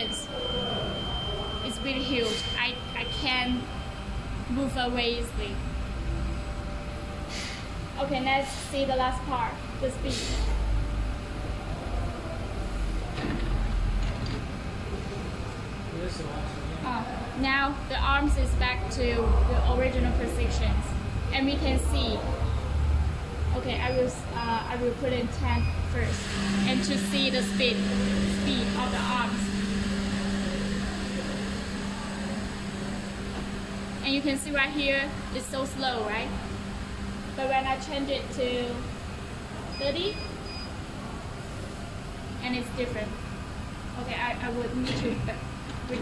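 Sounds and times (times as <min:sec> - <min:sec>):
cable coiler machine humming: 0:00.0 - 0:46.0
low mechanical rumble: 0:00.0 - 0:46.0.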